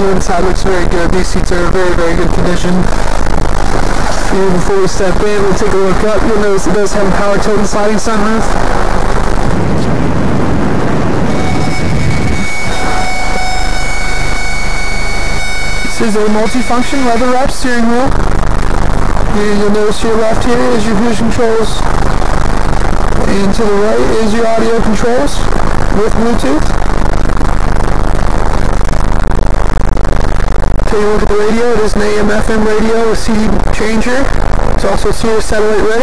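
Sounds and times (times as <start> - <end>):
low rumble: 0.8 - 30.9
sunroof motor whine: 3.0 - 17.5.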